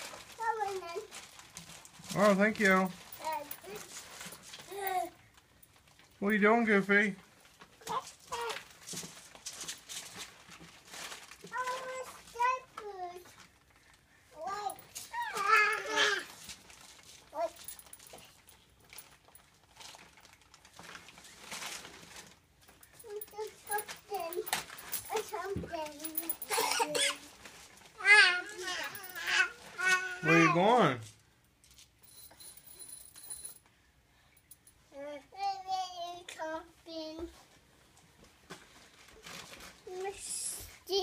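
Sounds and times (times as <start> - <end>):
toddler vocal sound: 4.6 - 5.2, 7.8 - 8.7, 14.3 - 16.4, 23.0 - 27.4, 28.0 - 30.6, 39.8 - 41.0
faint taps and rustles: 37.0 - 39.8.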